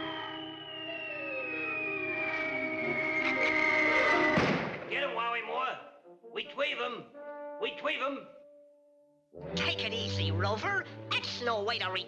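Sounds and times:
cartoon falling whistle: 0:00.0 - 0:04.5
thud: 0:04.3 - 0:04.9
orchestral music: 0:09.4 - 0:12.0.

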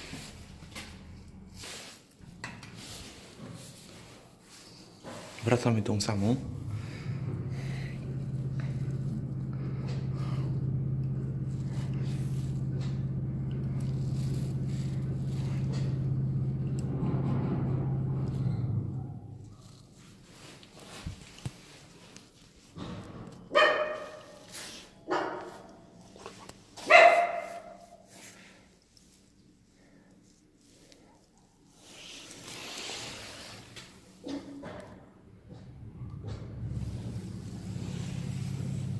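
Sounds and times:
lift motor humming: 0:06.0 - 0:21.0, 0:35.3 - 0:38.9
dog barking: 0:23.5 - 0:24.5, 0:25.1 - 0:25.7, 0:26.8 - 0:27.9.

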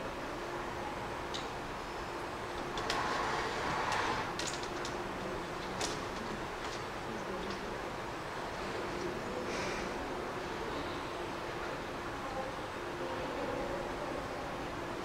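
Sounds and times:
background hum and hiss: 0:00.0 - 0:15.0.

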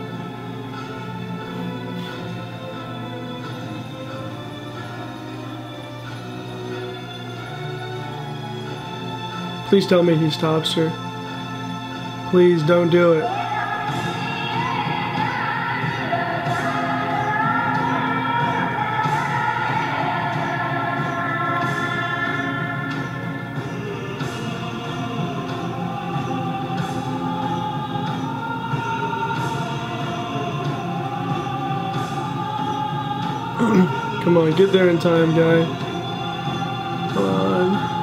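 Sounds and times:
choir singing sliding melodies: 0:00.0 - 0:38.0.

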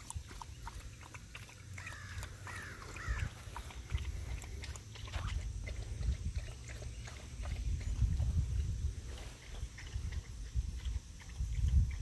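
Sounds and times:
low microphone rumble: 0:02.8 - 0:12.0
footsteps through grass: 0:08.2 - 0:09.9.

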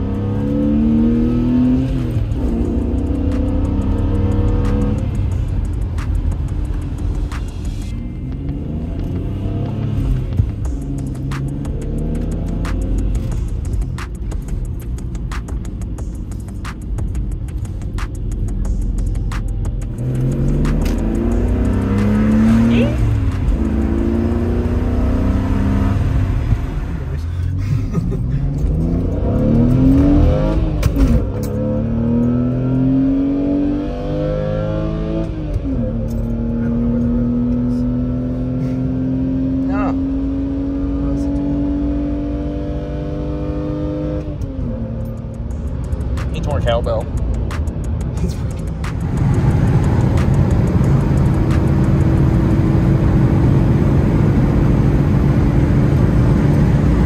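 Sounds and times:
car engine accelerating through gears: 0:00.0 - 0:57.0
road noise: 0:00.0 - 0:57.0.

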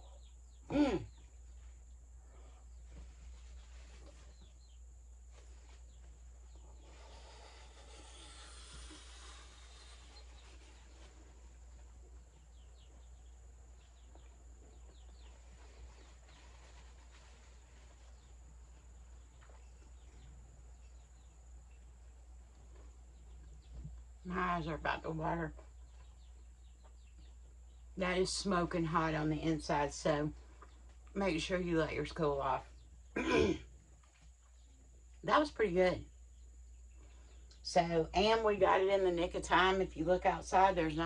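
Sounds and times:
faint bird chirps: 0:00.0 - 0:24.0
soft rustle: 0:02.7 - 0:13.3, 0:14.0 - 0:20.4.

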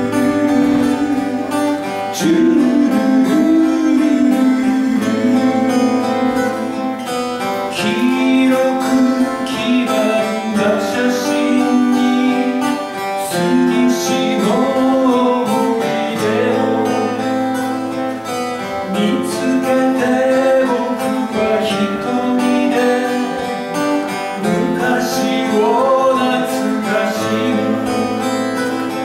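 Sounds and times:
acoustic guitars playing folk song: 0:00.0 - 0:29.0.

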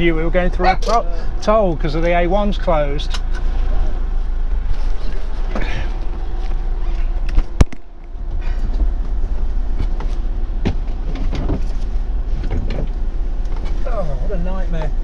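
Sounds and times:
engine idling low rumble: 0:00.0 - 0:15.0.

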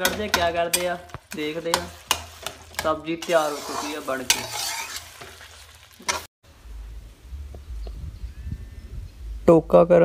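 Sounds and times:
spatula scrape: 0:00.0 - 0:06.3
spatula stirring in a pan: 0:00.0 - 0:06.3
light sizzle: 0:00.3 - 0:06.3.

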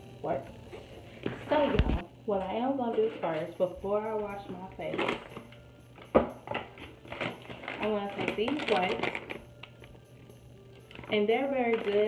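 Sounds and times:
low steady hum: 0:00.0 - 0:12.0
plastic packet rustling: 0:04.7 - 0:09.9, 0:10.8 - 0:12.0.

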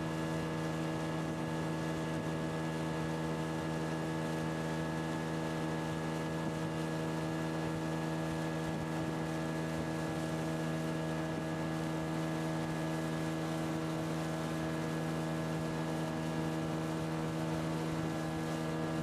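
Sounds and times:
outboard motor droning: 0:00.0 - 0:19.0.

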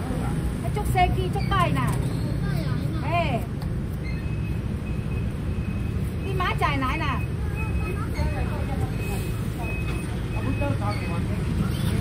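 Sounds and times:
low traffic rumble: 0:00.0 - 0:12.0
people talking: 0:06.3 - 0:12.0.

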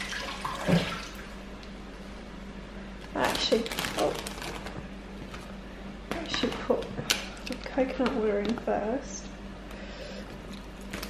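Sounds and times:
tap water running: 0:00.0 - 0:01.3.

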